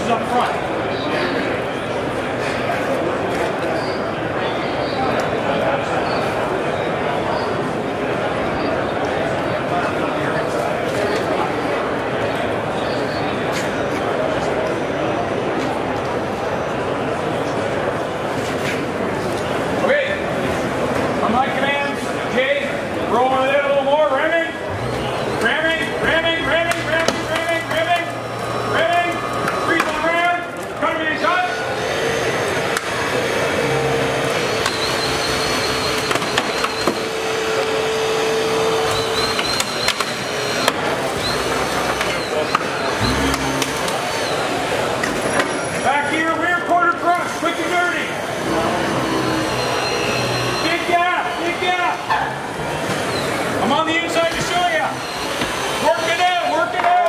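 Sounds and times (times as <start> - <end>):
men talking: 0.0 - 3.7, 19.7 - 34.6, 36.6 - 57.0
hydraulic rescue tool running: 24.4 - 57.0.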